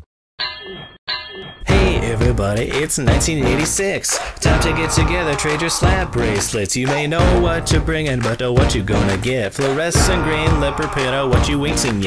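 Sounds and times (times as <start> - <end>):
ringing metallic clangs: 0.4 - 1.7
hip-hop beat: 1.4 - 12.0.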